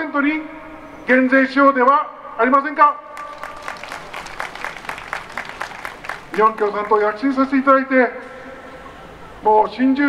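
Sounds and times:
crowd applauding: 3.2 - 7.6.

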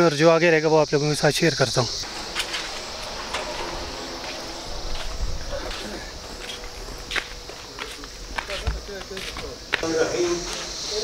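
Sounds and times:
faint voices: 1.1 - 11.0
footsteps on a paved path: 2.0 - 11.0.

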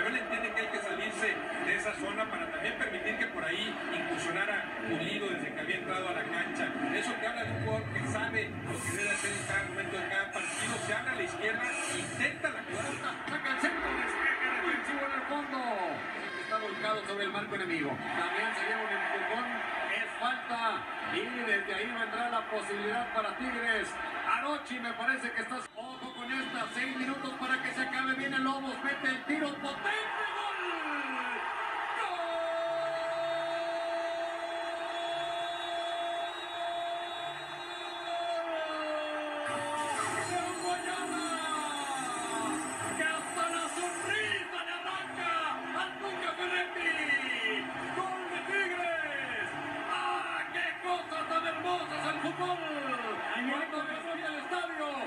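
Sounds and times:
men talking on television: 0.0 - 55.0.

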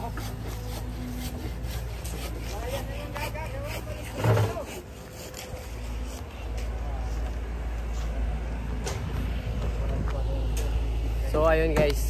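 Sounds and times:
short scraping strokes: 0.0 - 6.7
excavator engine running: 0.0 - 12.0.

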